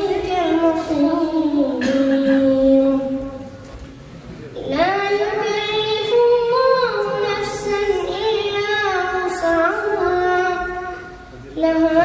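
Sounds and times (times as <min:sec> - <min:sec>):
boy chanting melodically: 0:00.0 - 0:03.6, 0:04.6 - 0:12.0.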